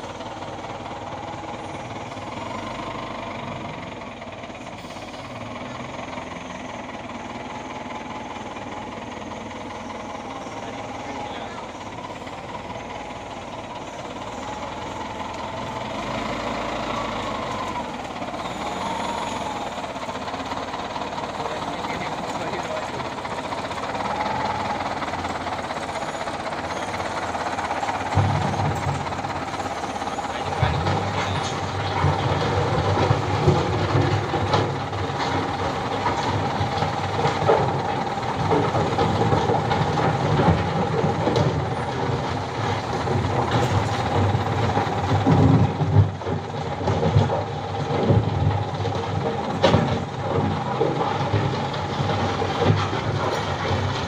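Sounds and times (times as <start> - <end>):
diesel engine working under load: 0.0 - 54.0
metallic clanks and rattles: 9.6 - 54.0.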